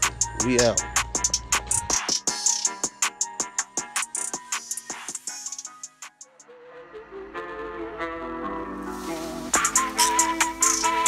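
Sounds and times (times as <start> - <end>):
drum beat: 0.0 - 6.0, 9.5 - 11.0
wavering melody notes: 6.4 - 11.0.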